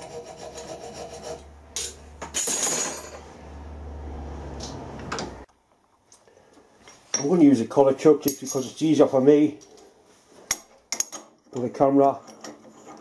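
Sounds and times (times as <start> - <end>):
hacksaw rasping on steel: 0.0 - 1.5
metal clatter: 1.8 - 3.3.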